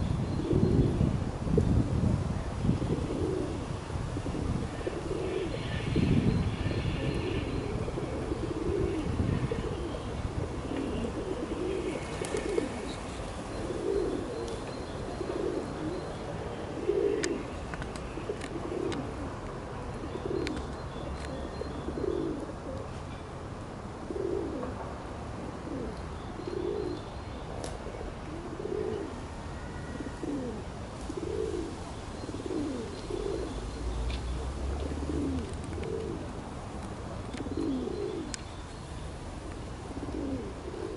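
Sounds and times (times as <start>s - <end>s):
pigeon cooing: 4.2s - 5.9s, 6.7s - 13.0s, 13.6s - 14.6s, 15.2s - 16.0s, 16.7s - 17.5s, 18.2s - 19.4s, 21.6s - 22.8s, 24.1s - 24.7s, 25.6s - 27.0s, 28.3s - 30.6s, 31.2s - 33.6s, 34.8s - 36.3s, 37.4s - 38.4s, 39.9s - 40.9s
small birds chirping: 37.2s - 39.2s.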